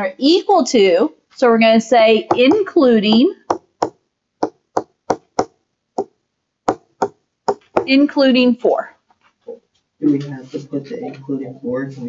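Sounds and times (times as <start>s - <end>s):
stylus tapping on tablet screen: 2.3s - 8.0s.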